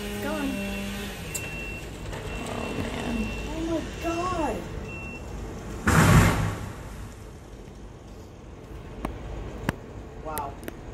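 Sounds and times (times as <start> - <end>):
low outdoor rumble and hiss: 1.9 - 10.9.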